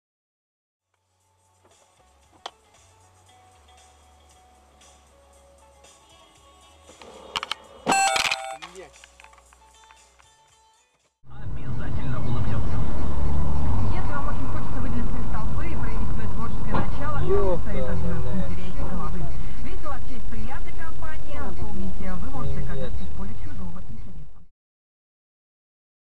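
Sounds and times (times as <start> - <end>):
vehicle and road noise: 11.2 - 24.4.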